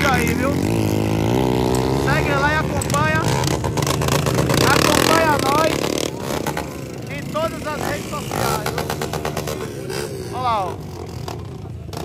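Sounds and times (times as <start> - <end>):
people's voices: 0.0 - 0.8, 1.9 - 3.5, 4.4 - 11.4
motorcycle engines revving: 0.0 - 12.0.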